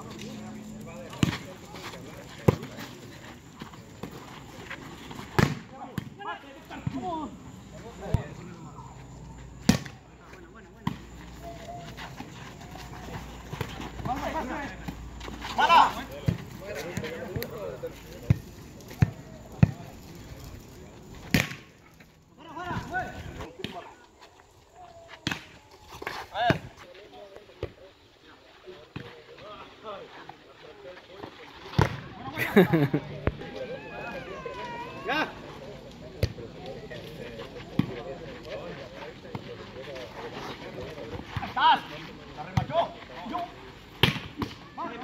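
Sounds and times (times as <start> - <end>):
players shouting and talking: 0.0 - 21.7, 22.3 - 45.0
volleyball being struck by hands: 5.4 - 6.1, 44.0 - 44.6.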